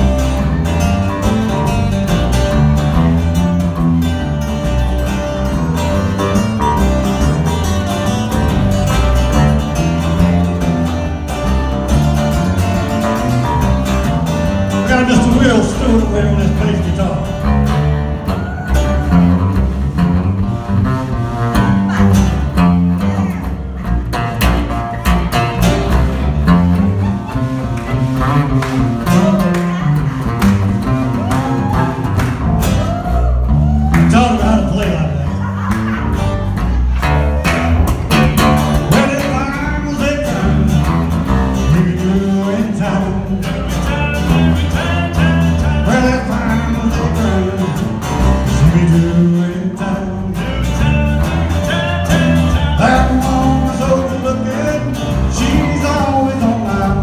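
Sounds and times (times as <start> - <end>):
acoustic bass guitar solo: 0.0 - 57.0
strummed acoustic guitars: 0.0 - 57.0.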